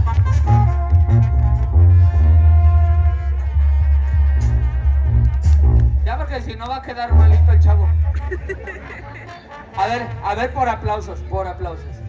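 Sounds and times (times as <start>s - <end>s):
brass band music: 0.0s - 12.0s.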